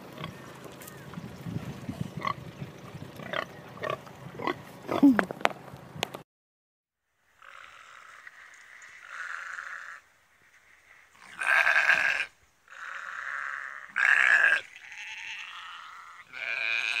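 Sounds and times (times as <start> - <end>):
sheep bleating: 11.3 - 12.3, 13.2 - 17.0.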